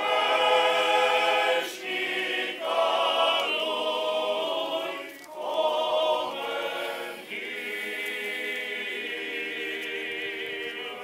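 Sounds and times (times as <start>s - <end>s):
male choir chanting a cappella: 0.0s - 11.0s.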